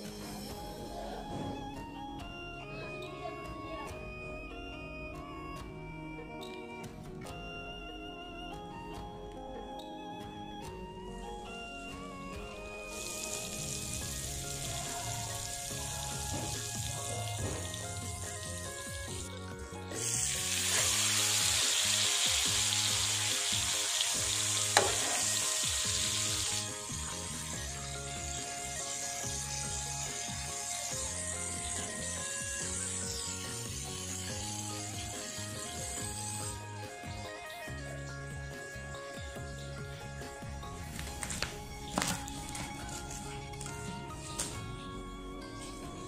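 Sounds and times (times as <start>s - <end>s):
butter sizzling on a griddle: 12.9s - 18.7s, 19.9s - 36.3s
fish frying on a griddle: 12.9s - 18.7s, 20.0s - 36.2s.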